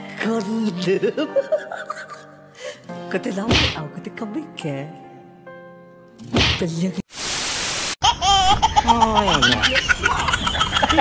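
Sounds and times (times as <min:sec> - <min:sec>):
high-pitched laughter: 0:08.0 - 0:11.0.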